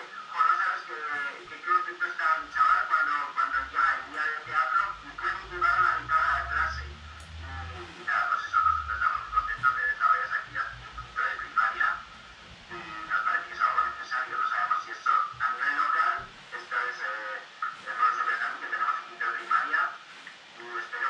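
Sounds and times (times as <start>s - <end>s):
tinny voice through computer speaker: 0.0s - 20.0s, 20.6s - 21.0s.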